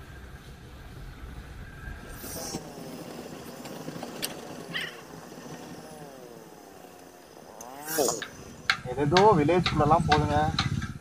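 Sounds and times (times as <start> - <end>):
motorcycle engine revving: 0.9 - 11.0.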